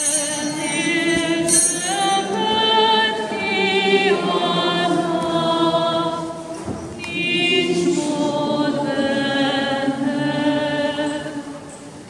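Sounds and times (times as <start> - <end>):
voices singing a hymn: 0.0 - 12.0.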